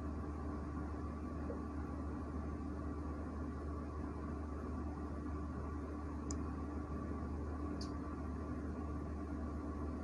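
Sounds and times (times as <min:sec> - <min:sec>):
low electrical hum with hiss: 0:00.0 - 0:10.0.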